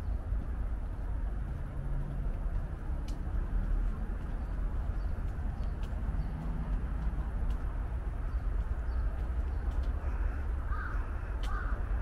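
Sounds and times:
low street rumble: 0.0 - 12.0
crow cawing: 10.0 - 12.0.

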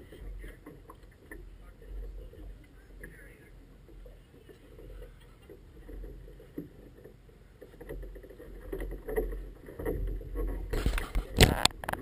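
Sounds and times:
water sloshing: 0.0 - 12.0
camera handling scraping: 10.7 - 12.0.

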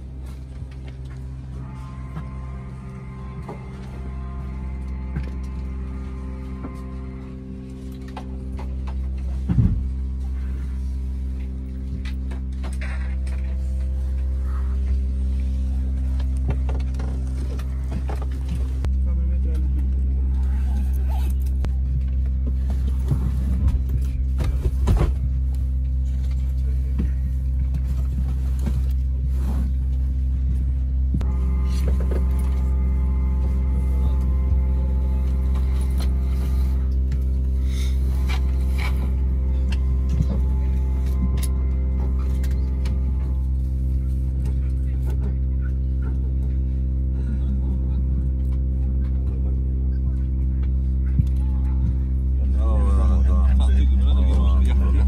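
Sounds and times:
higher steady tone: 0.0 - 24.6, 25.2 - 55.0
airplane cabin drone: 0.0 - 55.0.

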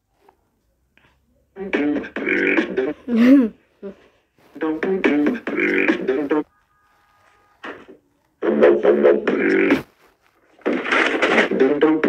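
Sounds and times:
man beatboxing: 1.6 - 3.2, 4.6 - 6.4, 8.4 - 9.9, 11.3 - 12.0.

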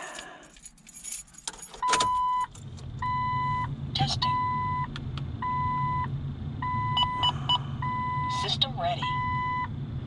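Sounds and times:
keys jangling: 0.0 - 2.7
low steady hum: 0.1 - 10.0
dashboard warning chime beeping: 1.8 - 9.7.

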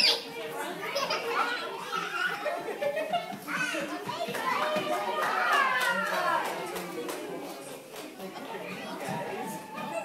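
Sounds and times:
adult voices: 0.0 - 10.0
young children chattering: 0.0 - 10.0.

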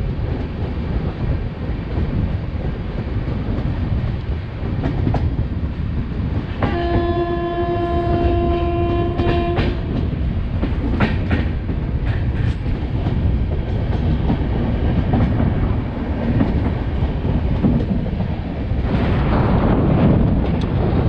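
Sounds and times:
train rumbling on rails: 0.0 - 21.0
locomotive horn: 6.6 - 9.9.

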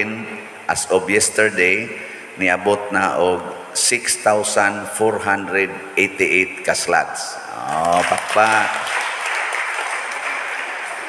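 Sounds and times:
hands clapping: 7.6 - 11.0.

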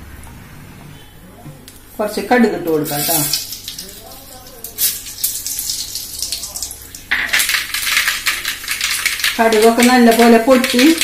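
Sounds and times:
seeds popping in hot oil: 2.9 - 11.0.

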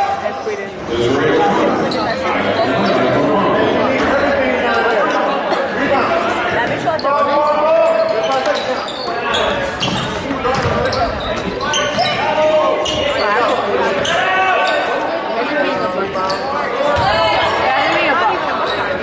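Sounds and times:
indistinct voices: 0.0 - 19.0.

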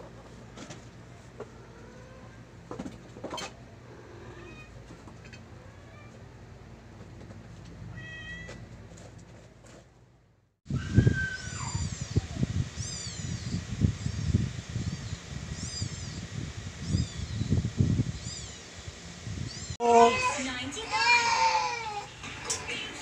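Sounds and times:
cats meowing: 4.0 - 4.8, 5.6 - 6.2, 7.9 - 8.6, 19.6 - 22.7.

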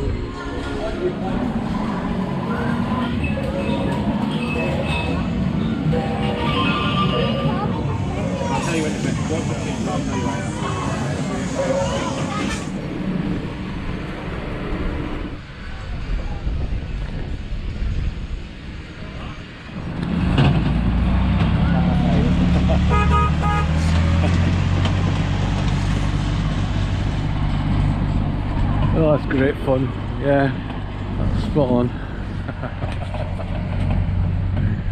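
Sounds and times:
mixed background noise: 0.0 - 34.9
road train engine: 0.0 - 34.9.

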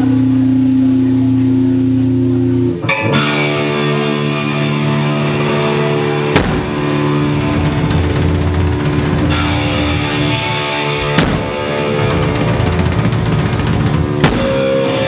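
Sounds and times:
rock band guitar and bass chords: 0.0 - 15.0
drum kit hit: 6.3 - 15.0.

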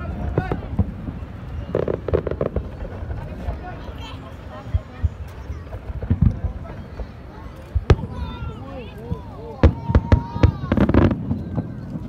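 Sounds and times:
fireworks booming: 0.0 - 12.0
fireworks crackling: 0.0 - 12.0.

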